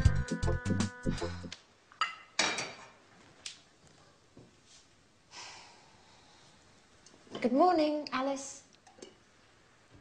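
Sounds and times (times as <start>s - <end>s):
tableware clinking: 2.0s - 3.0s.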